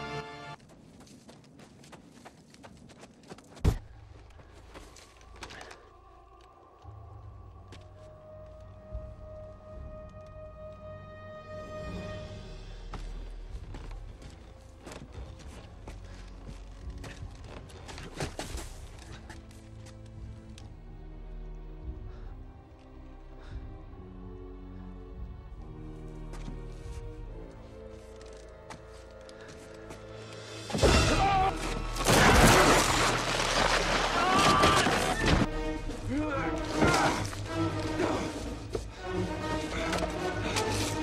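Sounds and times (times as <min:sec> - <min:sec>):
dramatic score music: 0:00.0 - 0:00.6, 0:03.7 - 0:41.0
running footsteps in snow: 0:00.0 - 0:05.8.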